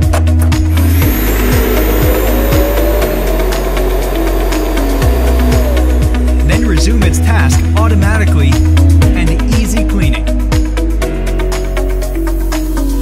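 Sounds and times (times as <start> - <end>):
background music: 0.0 - 13.0
suction motor rushing with whine: 0.2 - 7.8.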